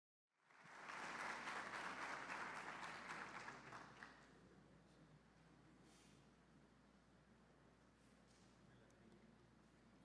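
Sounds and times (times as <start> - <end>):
audience applauding: 0.4 - 4.2.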